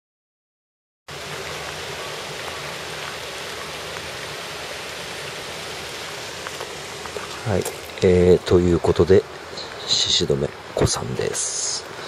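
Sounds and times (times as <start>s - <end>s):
water hissing: 1.1s - 12.0s.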